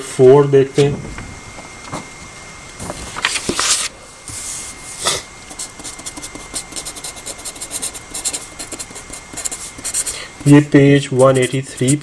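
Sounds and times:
pen scratching on paper: 5.5 - 12.0.

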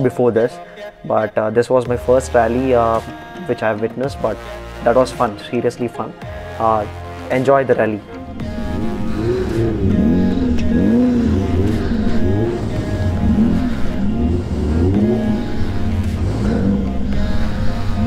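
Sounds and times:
low engine drone: 8.2 - 18.0
off-road vehicle engines revving: 8.4 - 18.0.

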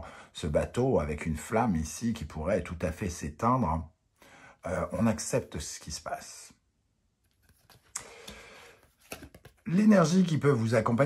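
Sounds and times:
cards rustling: 7.3 - 9.9.

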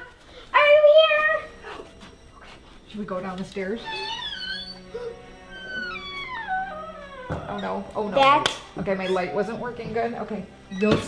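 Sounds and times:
eerie background music drone: 0.0 - 11.0.

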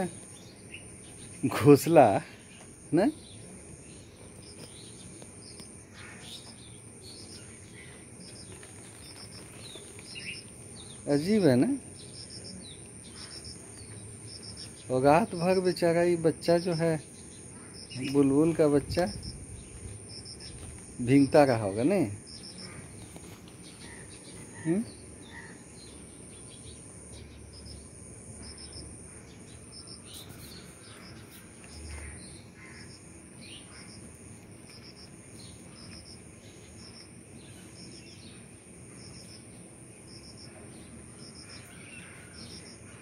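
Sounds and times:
high-pitched insect whine: 0.0 - 43.0
small bird chirps: 2.4 - 15.6, 28.4 - 34.0.

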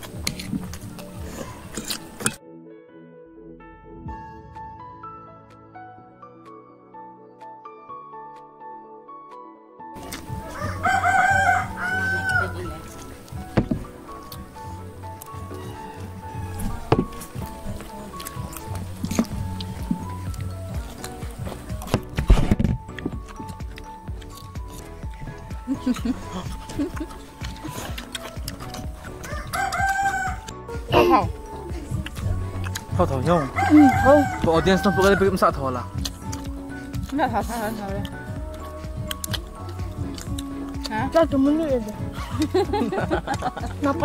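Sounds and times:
soft background music: 0.0 - 44.0
rooster crowing: 10.4 - 12.6, 15.3 - 17.0, 29.2 - 30.5, 33.4 - 35.6.

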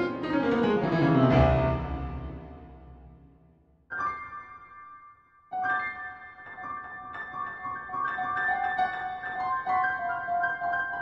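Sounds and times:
piano playing: 0.0 - 5.0
deep piano bass note ringing: 0.9 - 3.5.

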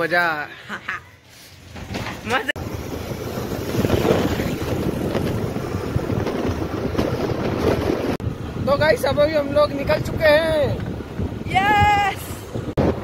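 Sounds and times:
wind buffeting microphone: 1.8 - 13.0.

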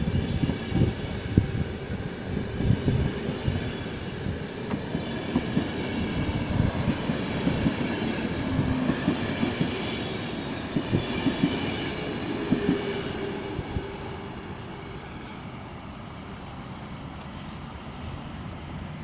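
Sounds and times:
train rumble: 0.0 - 19.0.

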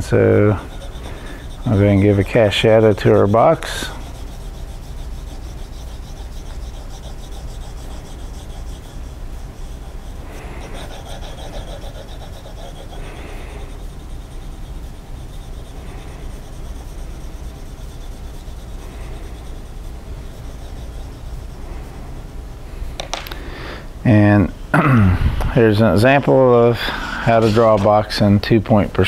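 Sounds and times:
pencil scratching on paper: 0.0 - 22.1.

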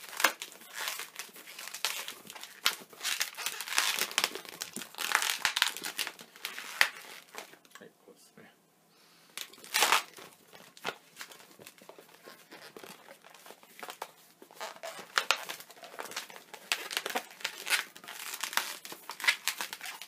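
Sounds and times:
latex balloons squeaking: 0.0 - 7.4, 9.4 - 10.2, 11.2 - 13.6, 14.5 - 20.0.

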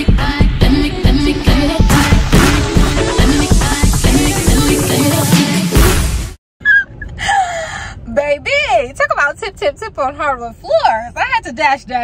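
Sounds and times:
dance music: 0.0 - 6.4
woman gasping: 7.1 - 8.1.

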